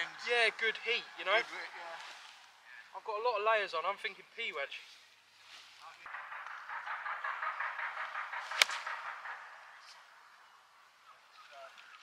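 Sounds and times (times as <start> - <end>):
golf club striking ball: 7.4 - 9.3.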